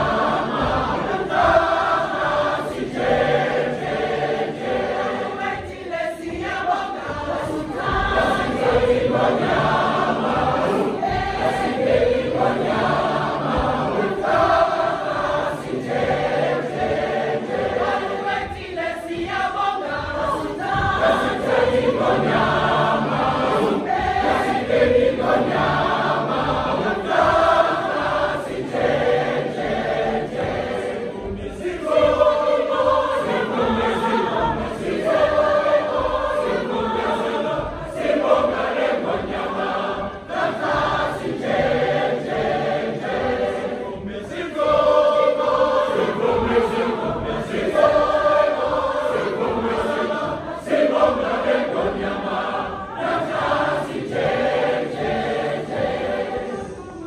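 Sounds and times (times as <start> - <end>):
gospel choir singing: 0.0 - 57.0.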